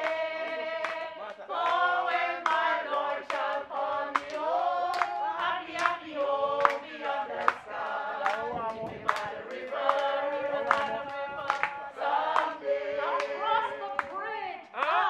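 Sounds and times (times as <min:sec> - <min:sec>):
hand claps: 0:00.0 - 0:12.6
group singing unaccompanied: 0:00.0 - 0:15.0.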